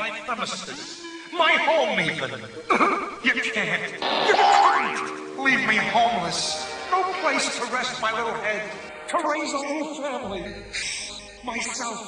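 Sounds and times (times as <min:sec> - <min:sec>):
wordless cartoon character noises: 0:04.0 - 0:05.2
comic sound effects: 0:04.0 - 0:05.3.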